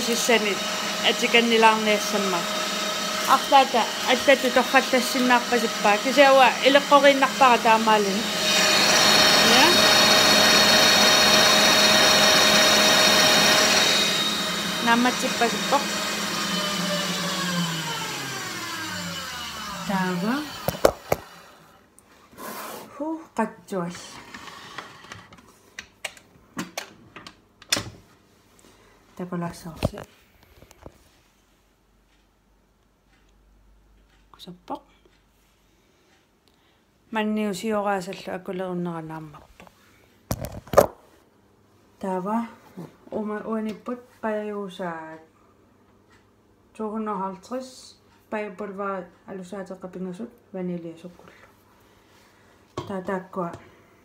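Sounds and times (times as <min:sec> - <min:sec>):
woman talking: 0:00.0 - 0:02.6, 0:03.2 - 0:10.1, 0:14.7 - 0:16.1, 0:19.7 - 0:20.6, 0:22.9 - 0:24.2, 0:29.2 - 0:30.1, 0:34.3 - 0:35.0, 0:37.1 - 0:39.5, 0:42.0 - 0:45.3, 0:46.8 - 0:51.4, 0:52.8 - 0:53.7.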